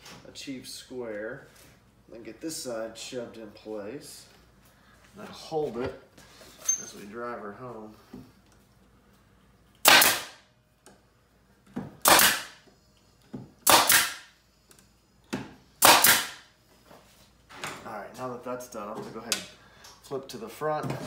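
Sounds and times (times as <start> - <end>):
pneumatic nail gun firing: 9.8 - 10.4, 12.0 - 12.6, 13.6 - 14.3, 15.8 - 16.4.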